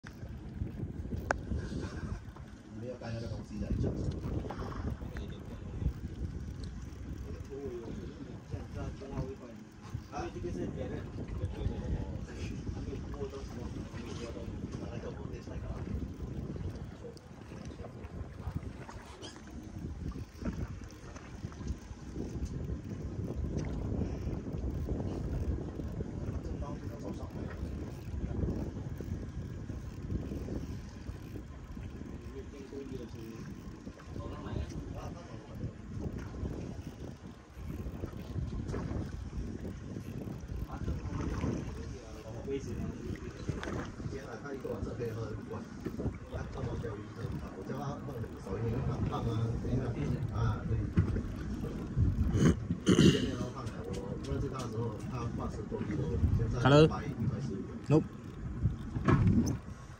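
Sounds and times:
water against boat hull: 0.0 - 59.9
wind buffeting microphone: 0.0 - 59.9.

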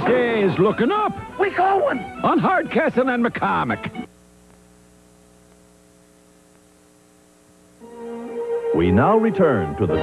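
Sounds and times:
faint mains hum: 0.0 - 10.0
tape hiss: 0.0 - 10.0.

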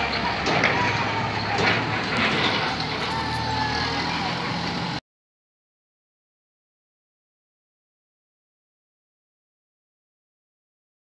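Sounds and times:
tractor engine running: 0.0 - 5.0.

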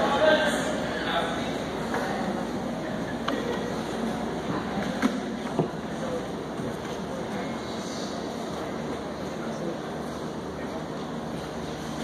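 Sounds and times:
background din of a large hall: 0.0 - 12.0.

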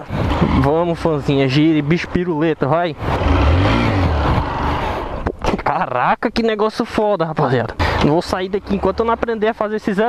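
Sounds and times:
motorcycle engine revving hard: 3.0 - 5.2.

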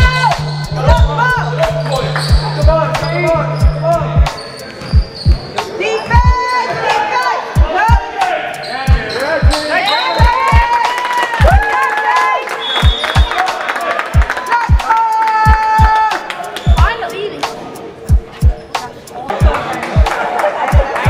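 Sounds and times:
sneaker squeaks: 0.1 - 7.0, 8.6 - 10.3.

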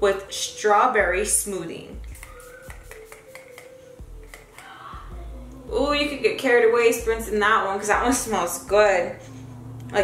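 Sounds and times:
faint background music: 0.0 - 10.0
spray bottle hissing: 2.0 - 4.7.

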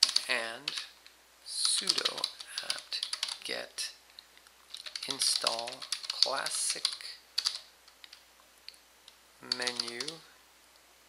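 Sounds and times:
computer keyboard typing: 0.0 - 0.9, 1.7 - 3.4, 4.7 - 8.2, 9.4 - 10.2.

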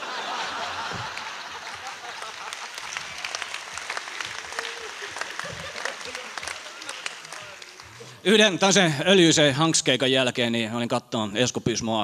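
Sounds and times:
audience laughter: 0.0 - 7.2
audience applause: 0.0 - 8.5.

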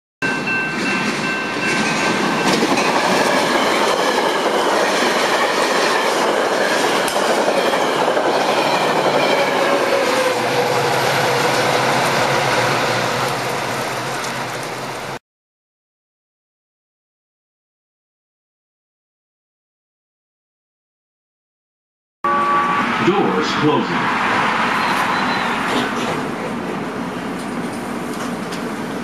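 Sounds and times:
train wheels on rails: 0.2 - 15.2, 23.8 - 29.0.

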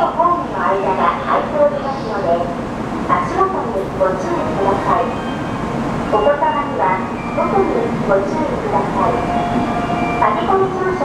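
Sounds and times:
train hum and hiss: 0.0 - 11.0
voices: 0.0 - 11.0.

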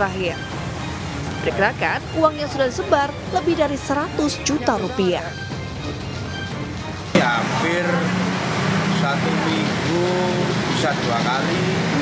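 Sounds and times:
voices talking: 1.2 - 12.0
car engine idling: 5.3 - 12.0.

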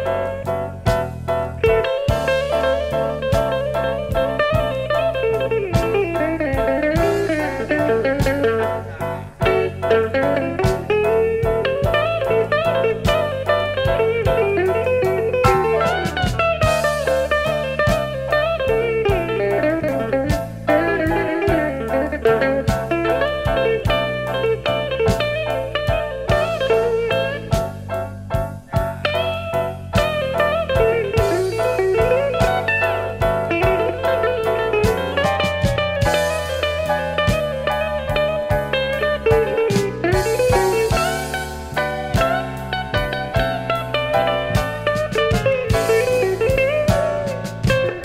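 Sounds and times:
electric guitar lead: 0.0 - 48.0
slow blues band with drums: 0.0 - 48.0.

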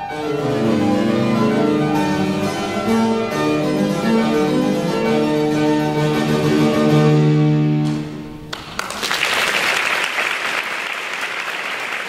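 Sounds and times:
harpsichord: 0.0 - 8.5
fortepiano: 0.0 - 9.1.

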